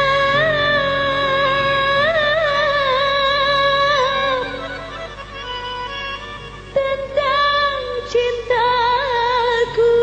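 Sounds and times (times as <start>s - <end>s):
vibrato melody line: 0.0s - 3.3s.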